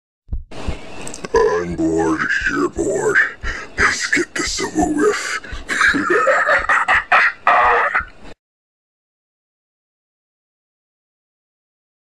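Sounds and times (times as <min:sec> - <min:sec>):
choppy voice-like sound: 0:01.4 - 0:06.0.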